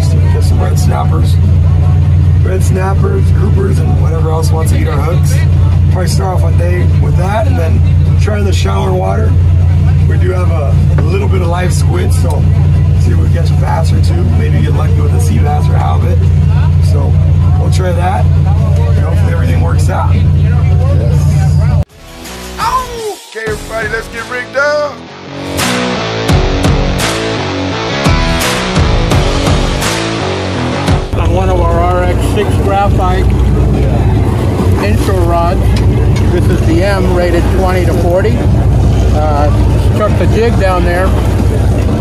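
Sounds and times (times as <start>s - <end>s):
boat engine drone: 0.0s - 21.9s, 25.2s - 42.0s
voices talking: 0.0s - 21.9s, 31.1s - 42.0s.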